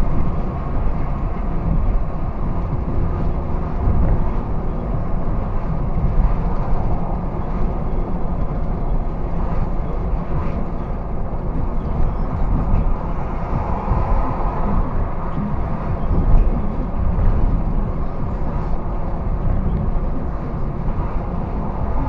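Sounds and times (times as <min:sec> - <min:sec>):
car road noise: 0:00.0 - 0:22.0.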